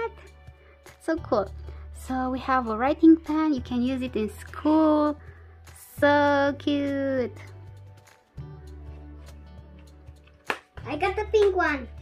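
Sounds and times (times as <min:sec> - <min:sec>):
background music low tones: 0:00.0 - 0:12.0.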